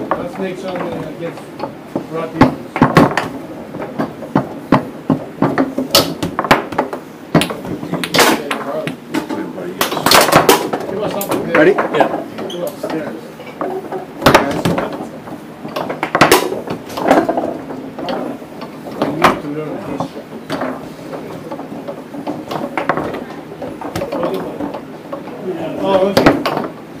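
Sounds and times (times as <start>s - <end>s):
foosball ball knocks: 0.0s - 26.9s
foosball rods clacking: 0.0s - 27.0s
background chatter: 7.0s - 27.0s.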